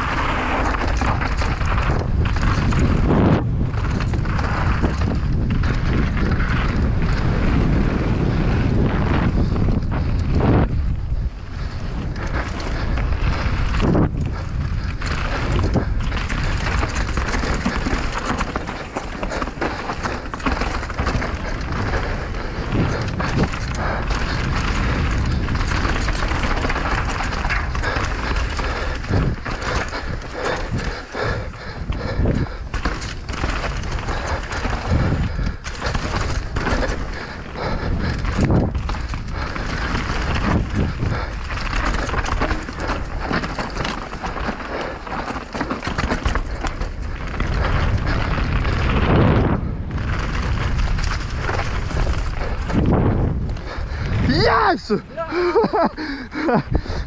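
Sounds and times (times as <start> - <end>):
bike knocks and rattles: 0.0 - 54.3
tyres running over dirt: 0.0 - 57.0
wind buffeting microphone: 0.0 - 57.0.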